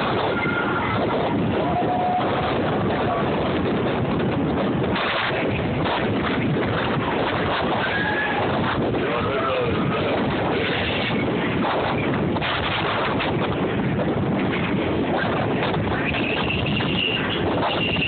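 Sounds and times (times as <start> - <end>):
moving train running noise: 0.0 - 18.0
wind buffeting microphone: 0.0 - 18.0.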